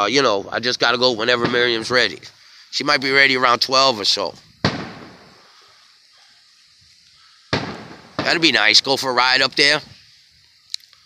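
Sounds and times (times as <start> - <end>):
faint outdoor background noise: 0.0 - 11.0
firework bang echo rumbling: 4.6 - 5.5, 7.5 - 8.8.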